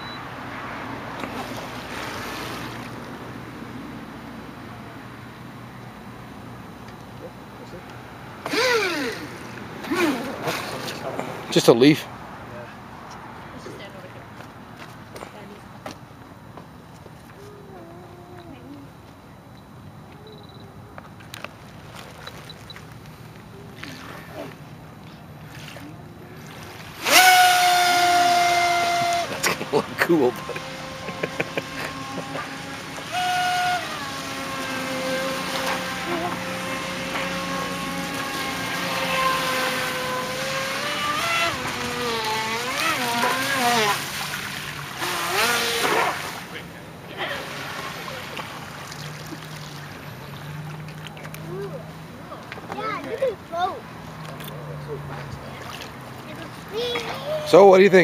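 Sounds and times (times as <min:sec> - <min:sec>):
model boat motor whine: 0:00.0 - 0:12.7, 0:17.2 - 0:52.4
shoreline background noise: 0:00.0 - 0:58.0.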